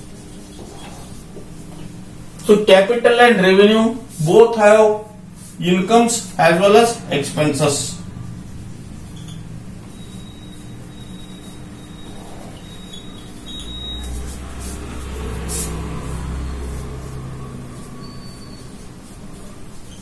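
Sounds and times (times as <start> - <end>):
marker squeaking on whiteboard: 0.0 - 2.0, 9.0 - 15.8, 16.4 - 20.0
steady low hum: 0.0 - 20.0.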